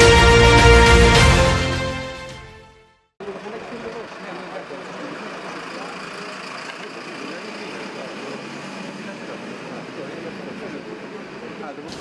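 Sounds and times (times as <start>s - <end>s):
vehicle engine idling: 3.2s - 12.0s.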